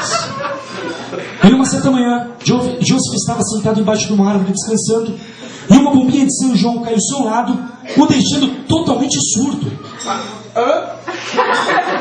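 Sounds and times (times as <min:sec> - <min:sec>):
audience laughing: 0:00.0 - 0:01.4, 0:11.1 - 0:12.0.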